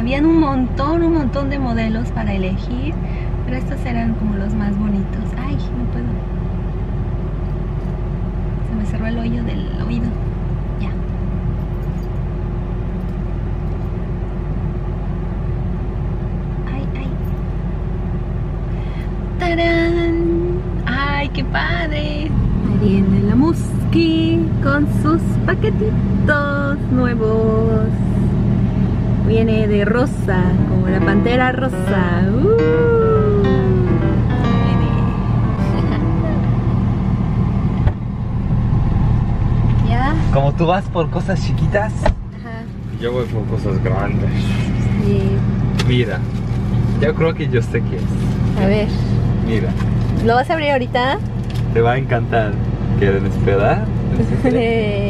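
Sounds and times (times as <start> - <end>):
car idling from inside: 0.0 - 55.0
faint constant hum: 0.0 - 55.0
woman crying out: 32.4 - 34.1
car door shutting: 37.8 - 38.1, 41.9 - 42.4.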